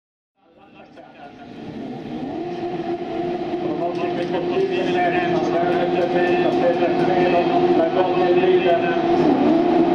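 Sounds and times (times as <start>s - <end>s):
racing buggy engines revving: 0.9s - 9.9s.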